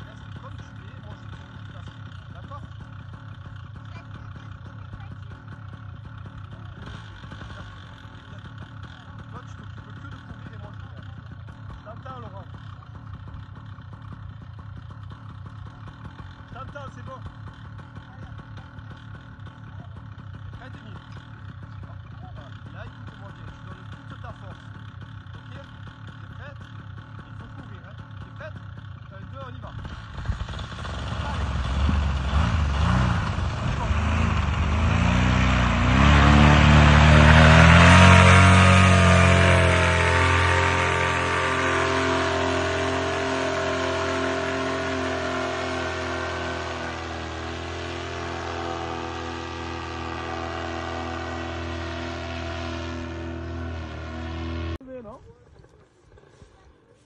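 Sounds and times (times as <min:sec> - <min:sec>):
paramotor engine and propeller: 0:00.0 - 0:57.0.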